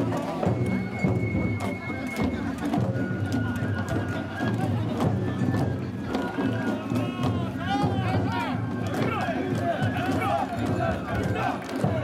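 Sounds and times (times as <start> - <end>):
sharp rhythmic clacks: 6.1 - 12.0
people chanting in rhythm: 6.7 - 12.0.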